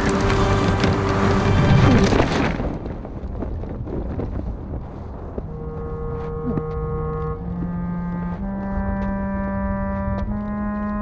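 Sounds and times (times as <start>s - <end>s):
crackles of blown debris: 0.0s - 5.5s
storm wind rumbling: 0.0s - 10.6s
low organ-like chord: 5.5s - 11.0s.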